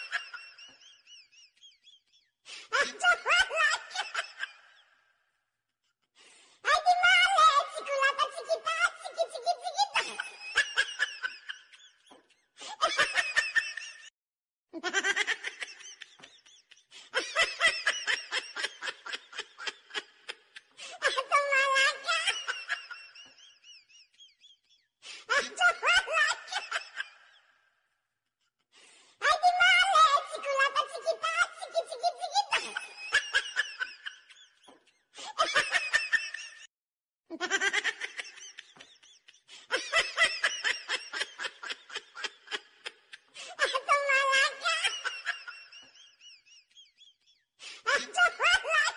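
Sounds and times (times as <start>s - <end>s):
people laughing and giggling: 0.0s - 4.8s, 7.0s - 14.1s, 14.8s - 27.4s, 29.3s - 36.7s, 37.3s - 48.9s.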